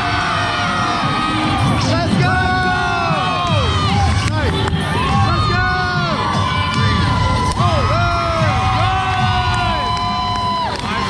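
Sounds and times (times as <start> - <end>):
crowd cheering and yelling: 0.0 - 11.0
loud music: 0.0 - 11.0.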